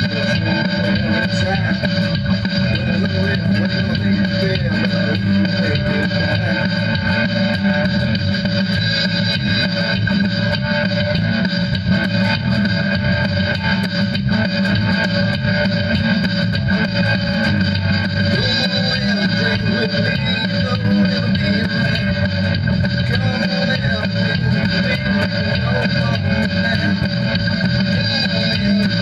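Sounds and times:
bass guitar line: 0:00.0 - 0:29.0
electric guitar: 0:00.0 - 0:29.0.

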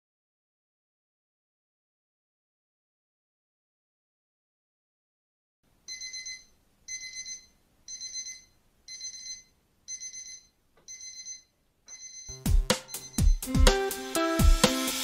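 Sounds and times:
electronic alarm beeping: 0:05.9 - 0:13.4
music with a beat: 0:12.3 - 0:15.0.

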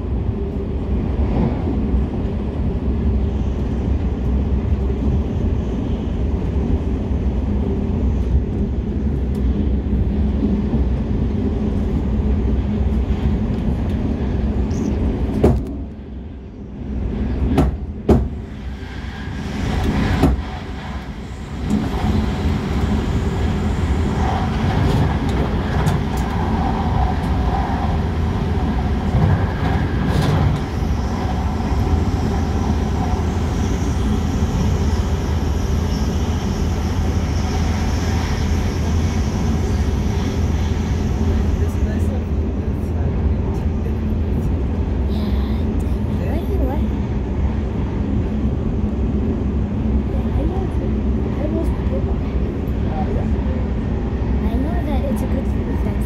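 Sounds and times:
train rumbling inside carriage: 0:00.0 - 0:56.0.

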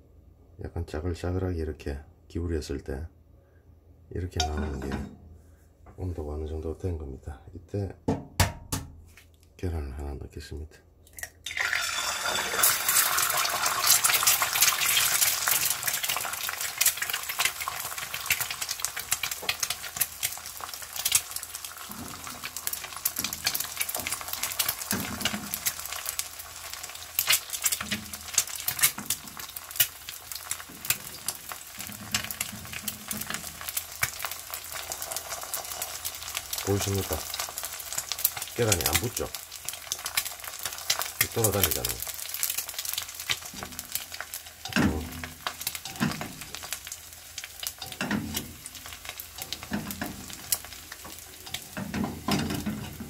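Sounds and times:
egg sizzling in frying pan: 0:11.3 - 0:53.0.

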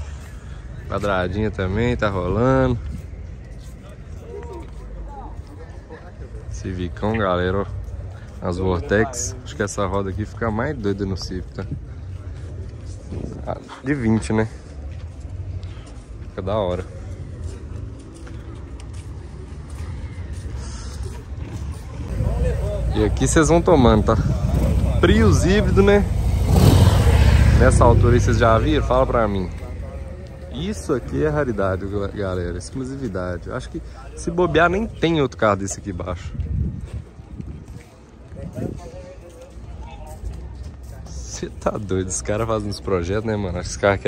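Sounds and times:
distant people talking: 0:14.5 - 0:35.0
car engine rumbling: 0:21.2 - 0:32.6.

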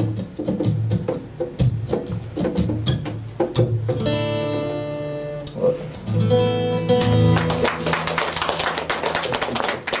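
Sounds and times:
audience clapping: 0:07.0 - 0:10.0.

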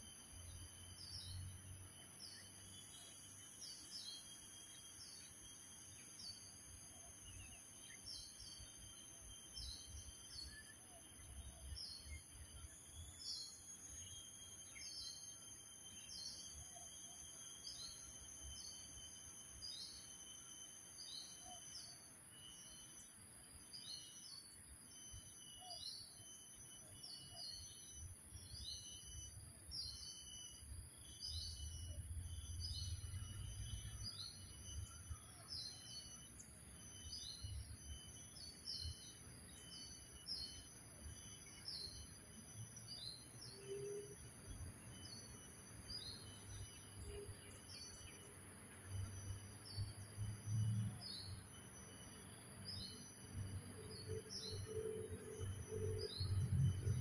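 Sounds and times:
songbird call: 0:42.8 - 0:57.0.

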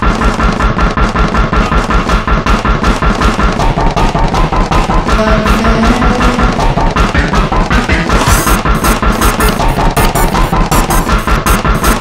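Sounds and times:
stuttering looped music sample: 0:00.0 - 0:12.0.

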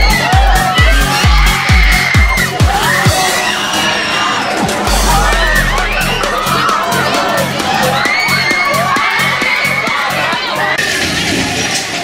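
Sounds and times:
riders screaming: 0:00.0 - 0:04.6
background music with steady beat: 0:00.0 - 0:11.1.

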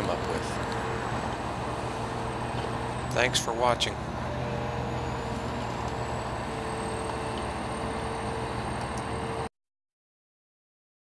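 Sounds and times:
excavator diesel engine running: 0:00.0 - 0:09.5.

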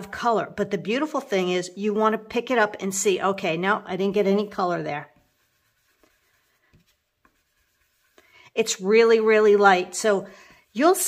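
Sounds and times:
brush brushing on paper: 0:04.0 - 0:11.0.

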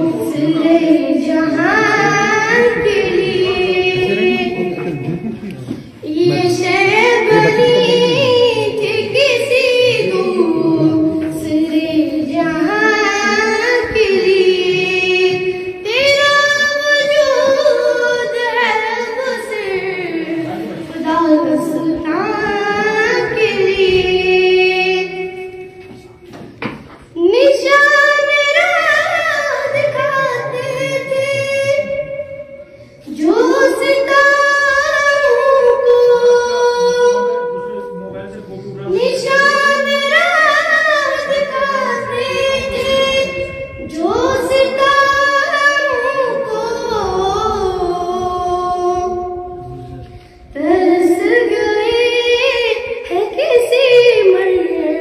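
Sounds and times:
girl singing into a microphone: 0:00.0 - 0:05.2, 0:05.8 - 0:26.1, 0:27.0 - 0:37.8, 0:38.8 - 0:55.0.

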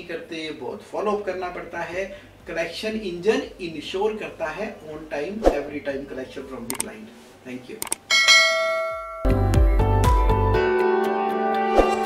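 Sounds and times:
notification chime: 0:08.1 - 0:09.5
music with deep bass notes: 0:09.3 - 0:10.9.

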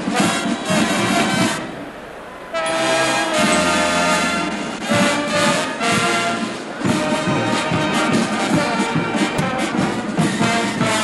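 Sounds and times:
marching band brass chord: 0:00.0 - 0:11.0.

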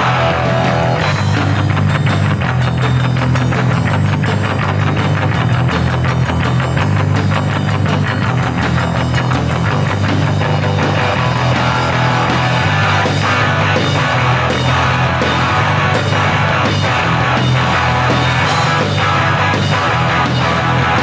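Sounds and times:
fast punk rock music: 0:00.0 - 0:21.0.

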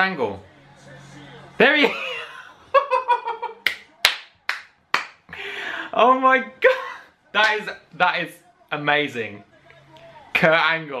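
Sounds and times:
man clapping hands: 0:03.6 - 0:05.4, 0:07.4 - 0:07.7
breathy exhale: 0:05.3 - 0:05.9.

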